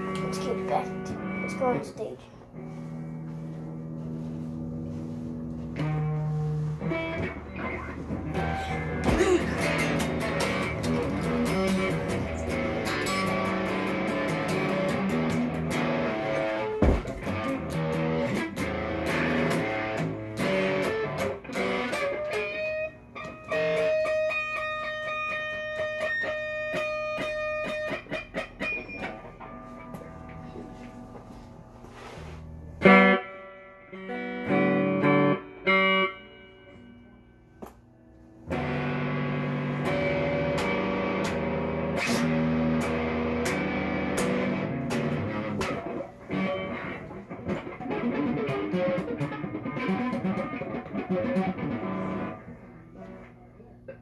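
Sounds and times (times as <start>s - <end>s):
electric guitar playing: 0.0s - 54.0s.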